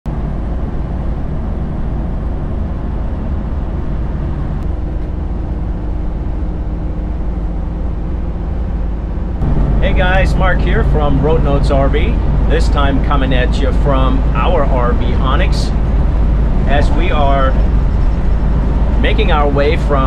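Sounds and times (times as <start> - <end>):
road and engine rumble in cab: 0.1 - 20.0.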